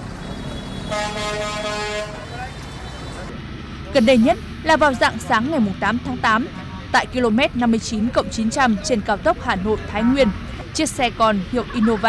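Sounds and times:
street traffic rumble: 0.0s - 12.0s
vehicle horn honk: 0.3s - 2.3s.

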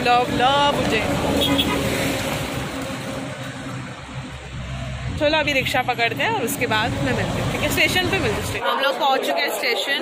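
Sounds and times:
road vehicles passing: 0.0s - 9.6s.

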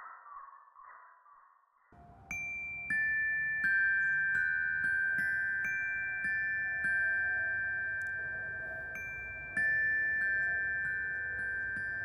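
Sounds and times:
glockenspiel notes ringing: 2.0s - 12.0s.

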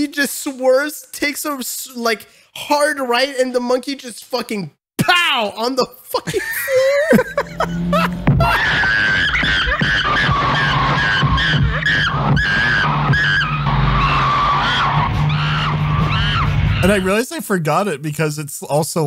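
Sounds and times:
background music: 6.4s - 17.2s
chimpanzee screeching: 6.6s - 16.8s
car tires skidding: 6.6s - 17.0s
car engine running: 7.1s - 17.0s.

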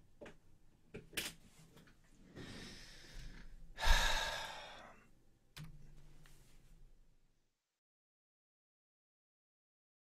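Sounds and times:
person sighing heavily: 2.3s - 5.1s.

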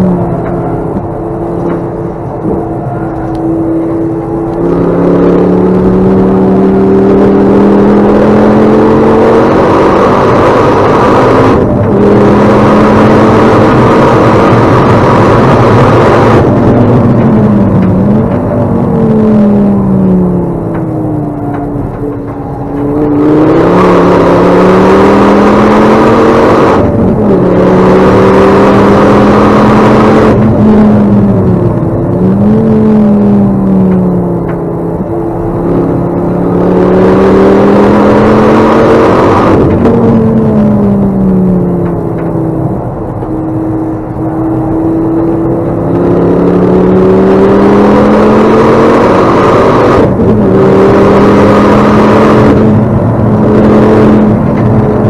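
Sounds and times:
car engine revving while driven hard: 0.0s - 55.0s.

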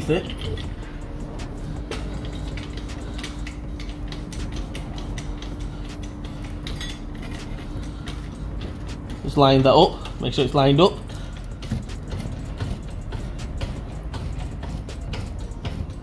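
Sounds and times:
metal jack clicking and clinking: 0.0s - 0.8s, 2.2s - 7.6s
low background hum: 0.0s - 16.0s.

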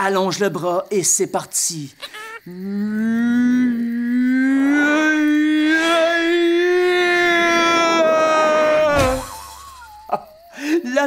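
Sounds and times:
man yelling long vowel: 3.2s - 9.3s.

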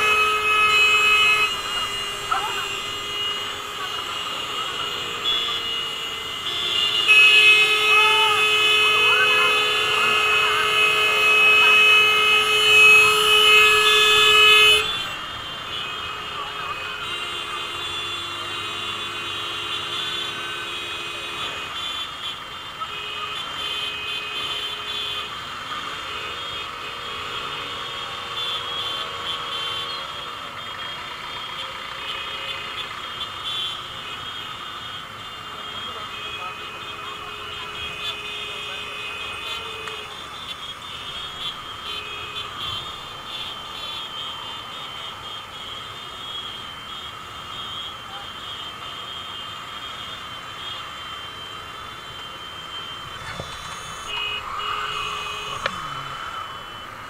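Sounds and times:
street traffic: 0.0s - 57.0s
vehicle horn: 0.0s - 57.0s.

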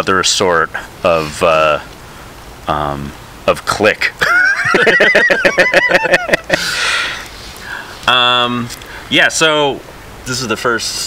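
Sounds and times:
person laughing hard: 4.2s - 7.2s
breathy exhale: 6.6s - 8.0s.

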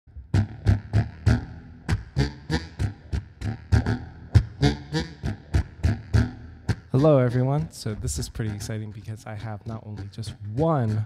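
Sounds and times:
bass harmonica rhythmic notes: 0.1s - 11.0s.

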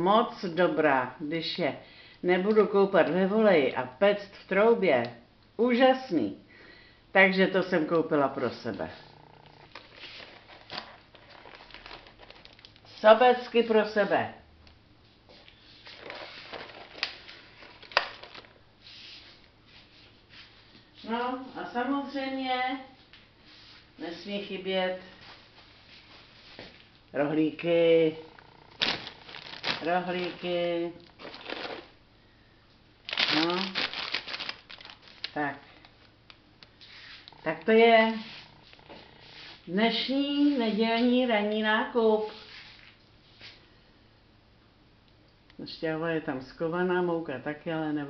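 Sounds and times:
plastic bag rustling: 9.2s - 13.5s, 15.4s - 20.1s, 28.4s - 32.0s, 33.0s - 36.2s
plastic packaging crinkling: 9.4s - 13.1s, 15.8s - 18.6s, 28.4s - 32.0s, 33.0s - 37.4s.

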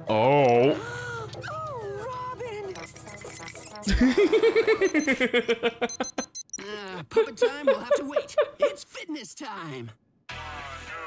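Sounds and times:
digital wristwatch beeping: 2.7s - 3.9s, 4.8s - 5.2s, 5.9s - 7.0s.

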